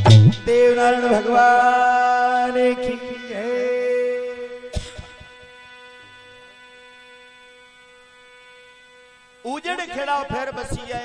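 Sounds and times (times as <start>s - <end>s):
sustained drone note: 0.0s - 11.0s.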